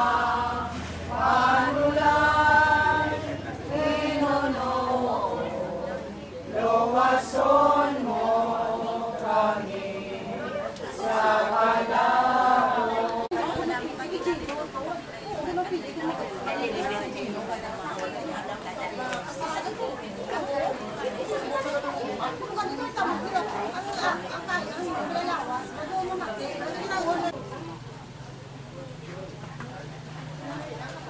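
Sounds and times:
people singing together: 0:00.0 - 0:14.1
murmur of chatter: 0:00.0 - 0:31.0.

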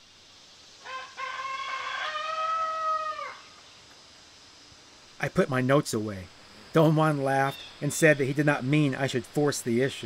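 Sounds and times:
rooster crowing: 0:00.8 - 0:03.6.

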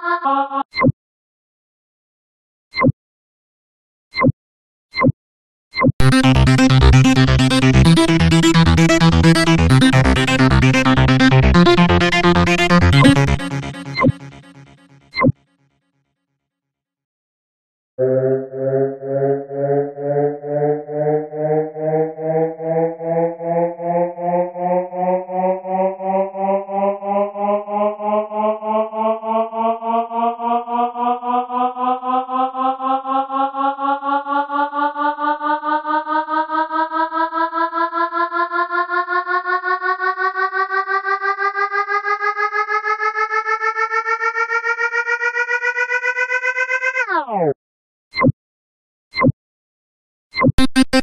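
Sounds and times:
synthesizer riser tone: 0:00.0 - 0:00.8, 0:06.0 - 0:15.4, 0:18.0 - 0:47.6.

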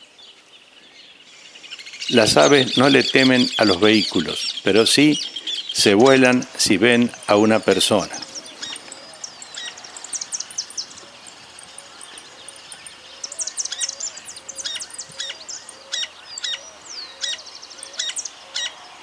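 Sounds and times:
wild birds singing: 0:00.0 - 0:19.0.

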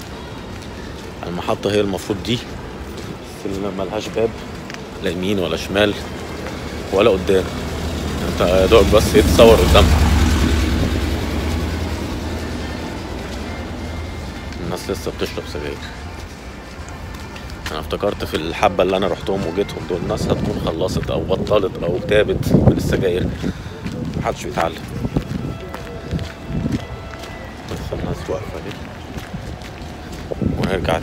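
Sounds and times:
footsteps: 0:00.0 - 0:31.0
passing vehicle rumble: 0:00.0 - 0:31.0.

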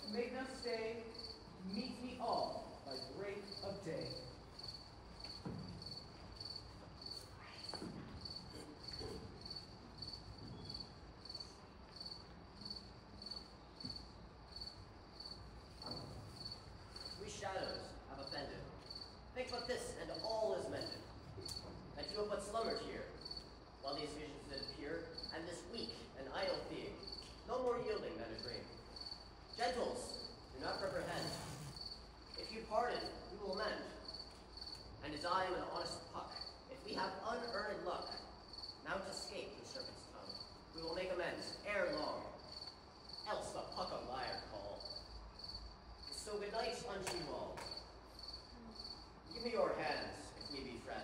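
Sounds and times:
cricket chirping: 0:00.0 - 0:51.0.

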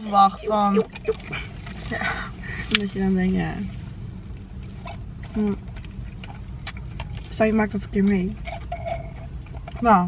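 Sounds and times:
car cabin rumble: 0:00.0 - 0:10.0.

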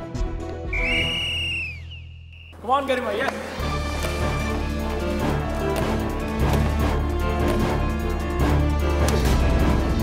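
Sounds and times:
background music: 0:00.0 - 0:10.0
whistle blast dropping in pitch: 0:00.7 - 0:02.5.

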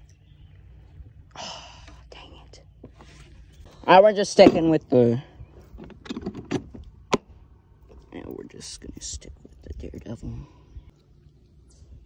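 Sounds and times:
low steady rumble: 0:00.0 - 0:12.0
person whispering: 0:01.8 - 0:02.7.

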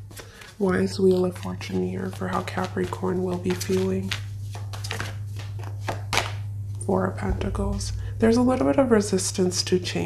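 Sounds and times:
cards being shuffled: 0:00.0 - 0:06.4
low hum: 0:06.4 - 0:10.0.

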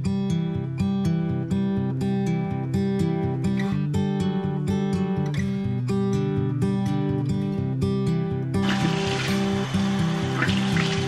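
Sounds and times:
acoustic guitar music: 0:00.0 - 0:11.0
bathroom tap running: 0:08.6 - 0:11.0
water splashing on face: 0:08.6 - 0:11.0.

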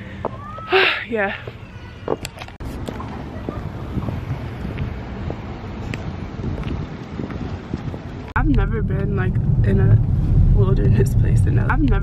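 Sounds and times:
wind buffeting microphone: 0:01.4 - 0:12.0.

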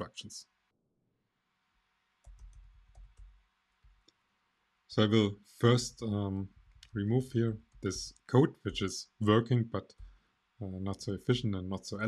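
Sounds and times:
computer key clicks: 0:02.2 - 0:03.4.

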